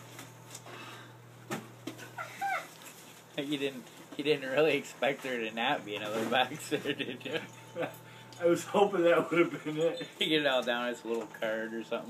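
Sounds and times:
dog whining: 2.0 - 2.8.

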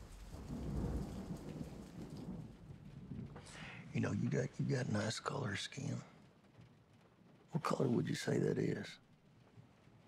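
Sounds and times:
steady rain falling: 0.0 - 10.0
thunder rumbling: 0.0 - 10.0.

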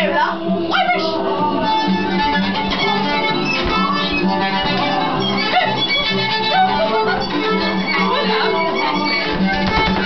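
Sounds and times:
violin playing quick tune: 1.0 - 10.0.

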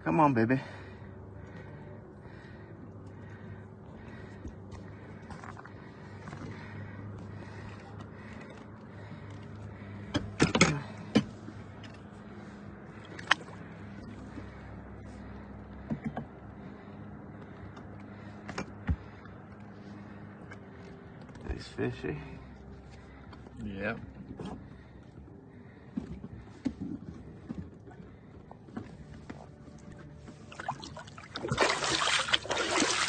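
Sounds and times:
boat motor humming: 0.0 - 33.0.

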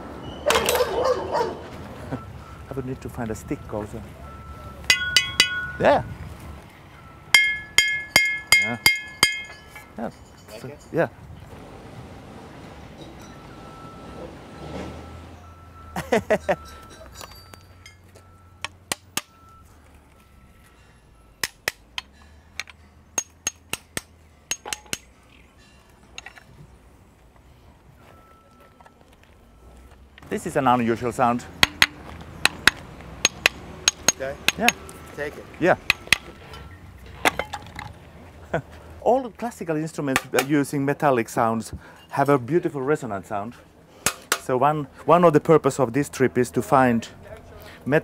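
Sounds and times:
scrap metal clinking: 4.8 - 5.9, 7.4 - 11.0, 16.0 - 20.9, 24.4 - 26.6, 31.5 - 38.0.

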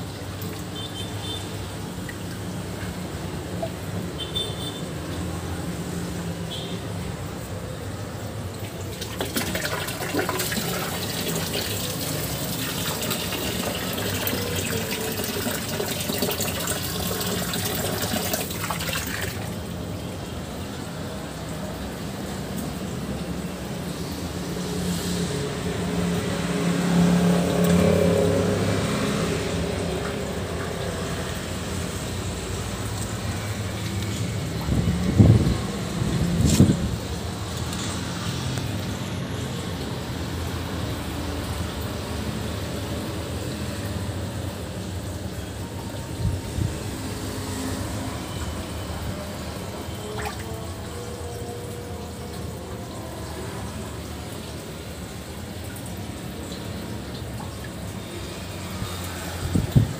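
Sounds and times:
water pouring into pond: 0.0 - 6.6, 7.3 - 59.9.

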